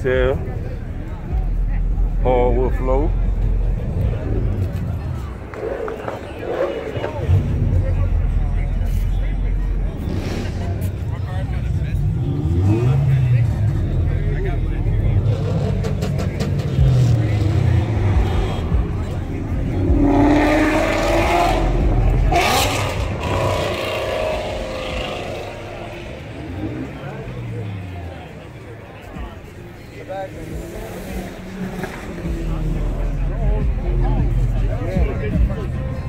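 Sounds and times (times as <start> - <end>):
car engine revving: 0.0 - 36.0
people talking: 0.0 - 36.0.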